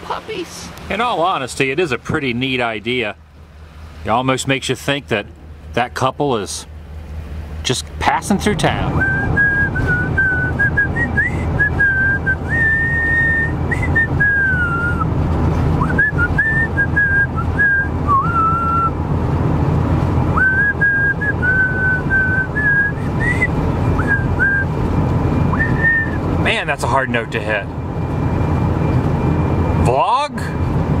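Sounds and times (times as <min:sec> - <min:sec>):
vehicle road and engine rumble: 0:00.0 - 0:31.0
man whistling a tune: 0:09.0 - 0:15.1, 0:15.8 - 0:19.0, 0:20.4 - 0:24.8, 0:25.4 - 0:26.2.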